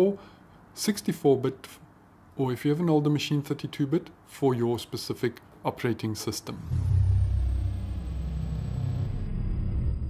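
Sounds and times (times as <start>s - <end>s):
deep low rumble: 6.6s - 10.0s
faint high tone sliding downward: 6.6s - 10.0s.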